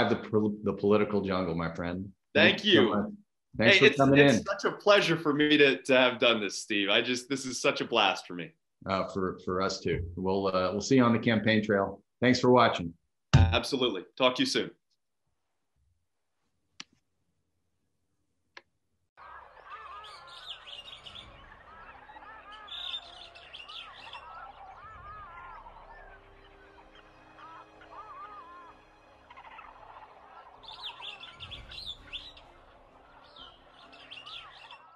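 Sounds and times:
birds chirping and calling: 19.2s - 34.9s.

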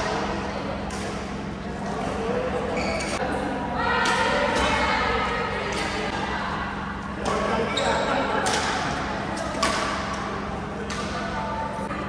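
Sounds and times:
murmur of voices: 0.0s - 12.0s
rackets hitting shuttlecock: 8.4s - 11.3s.

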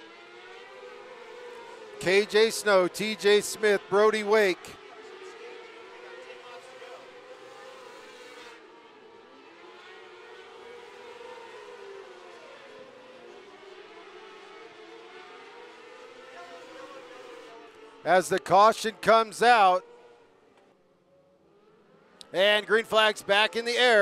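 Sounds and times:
racing car engines whining: 0.0s - 24.0s.

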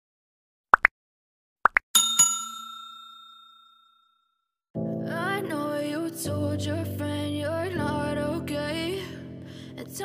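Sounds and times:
notification bell ding: 2.0s - 4.1s.

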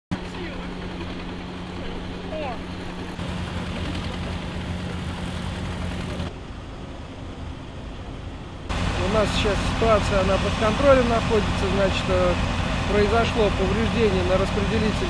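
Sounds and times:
low machinery engine hum: 0.1s - 15.0s
street noise: 0.1s - 15.0s.

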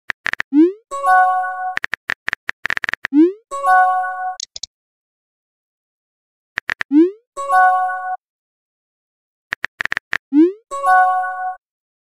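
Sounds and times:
keyboard tap clicks: 4.4s - 4.7s.

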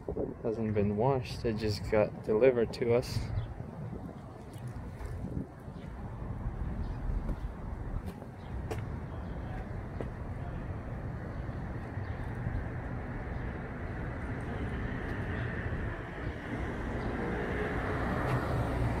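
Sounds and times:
city traffic rumble: 0.0s - 19.0s.

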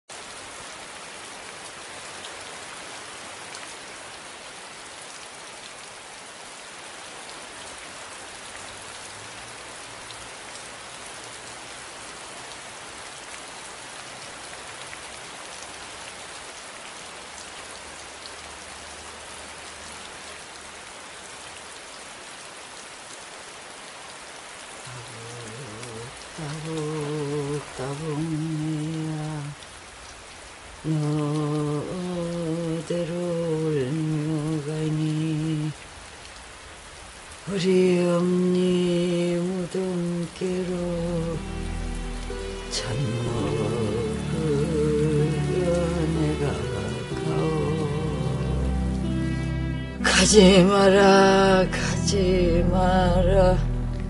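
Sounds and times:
steady rain: 0.0s - 54.0s
low musical note: 41.0s - 54.0s.

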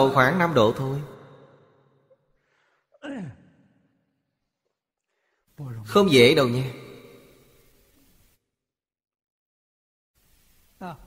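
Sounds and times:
man sighing: 2.5s - 3.4s.

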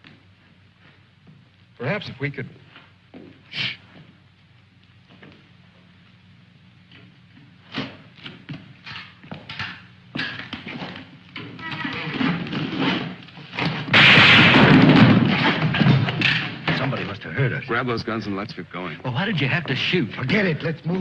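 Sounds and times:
thuds and knocks: 13.6s - 16.9s
voices: 16.7s - 21.0s.

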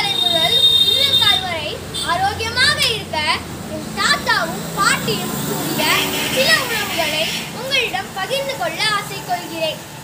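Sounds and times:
boy speaking: 0.0s - 9.9s.

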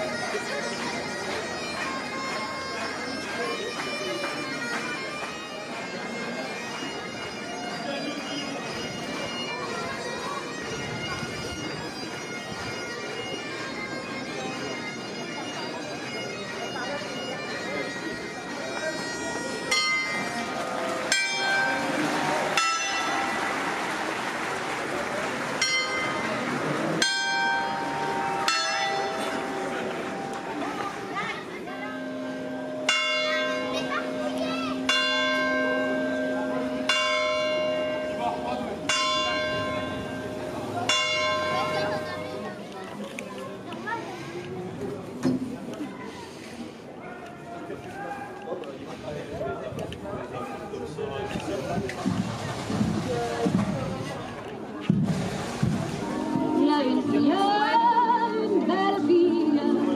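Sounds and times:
crowd chatter: 0.0s - 59.9s
church bells tolling: 19.6s - 24.4s, 25.5s - 42.7s.

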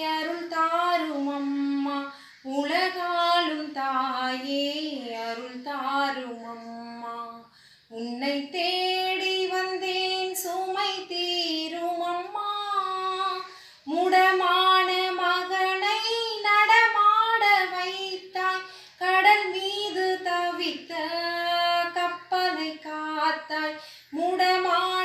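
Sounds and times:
woman singing hymn unaccompanied: 0.0s - 25.0s.

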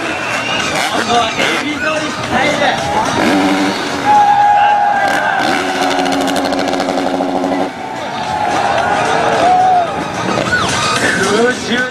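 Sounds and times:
motocross bike engine: 0.0s - 8.2s.

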